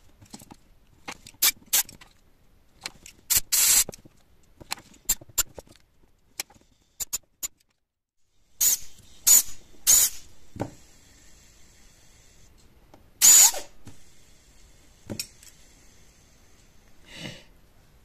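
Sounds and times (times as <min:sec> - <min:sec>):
compressed air blasts: 0:03.3 - 0:03.9, 0:08.6 - 0:12.6, 0:13.2 - 0:16.8.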